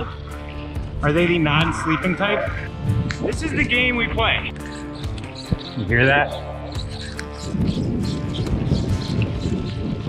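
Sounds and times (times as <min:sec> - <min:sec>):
background music: 0:00.0 - 0:10.0
wind: 0:00.0 - 0:10.0
high chirp from bike: 0:04.5 - 0:09.8.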